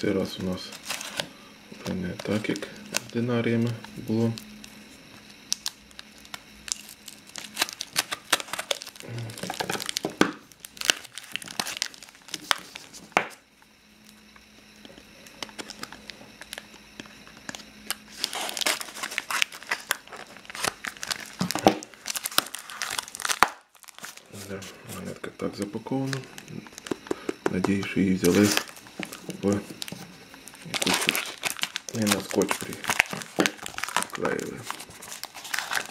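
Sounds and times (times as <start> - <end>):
cardboard mailer tearing and crinkling: 0.5 - 3.2, 5.5 - 13.2, 17.5 - 24.5, 28.0 - 35.9
packing tape peeling: 5.5 - 13.0, 17.5 - 24.2, 26.2 - 35.9.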